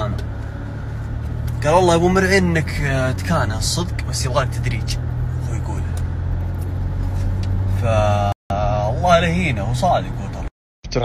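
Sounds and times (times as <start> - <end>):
car interior engine and road drone: 0.0 - 10.5.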